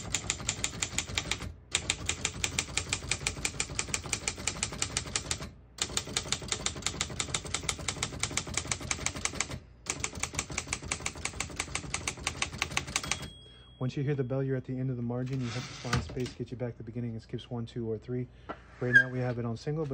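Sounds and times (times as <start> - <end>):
typewriter key strikes: 0.0 - 13.4.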